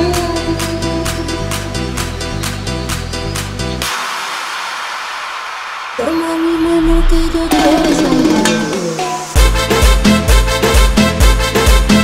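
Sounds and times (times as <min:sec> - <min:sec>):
white noise sweep: 0:03.8 - 0:09.4.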